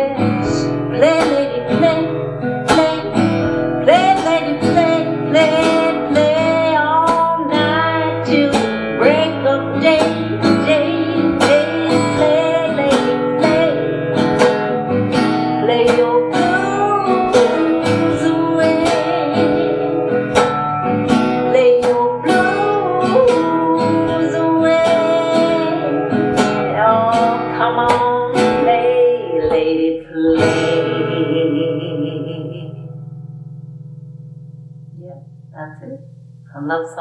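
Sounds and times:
woman singing: 0.0s - 33.0s
acoustic guitar strumming: 0.0s - 37.0s.

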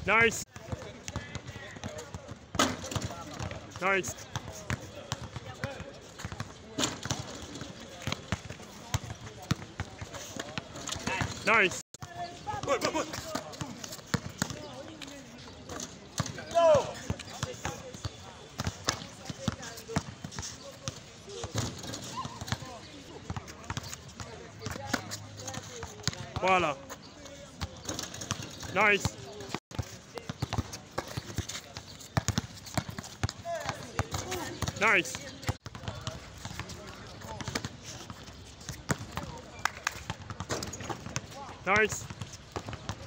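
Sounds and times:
basketball bouncing on concrete: 4.3s - 7.4s, 29.4s - 37.7s.

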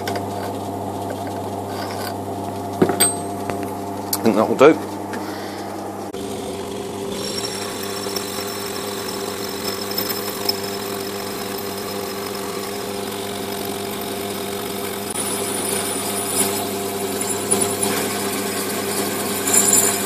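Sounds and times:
metal lathe cutting tube: 6.1s - 20.0s.

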